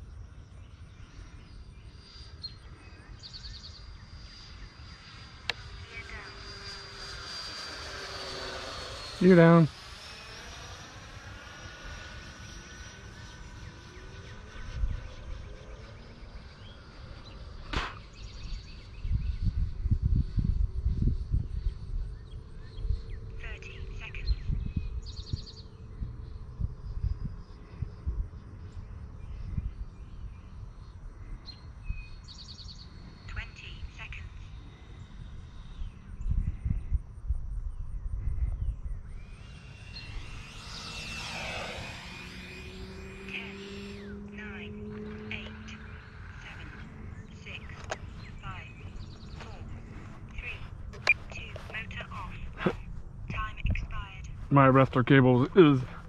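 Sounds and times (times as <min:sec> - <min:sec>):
birds chirping: 0:00.0 - 0:11.1, 0:38.5 - 0:56.0
swelling noise: 0:04.2 - 0:17.4, 0:39.0 - 0:52.9
camera handling rumble: 0:47.8 - 0:48.2.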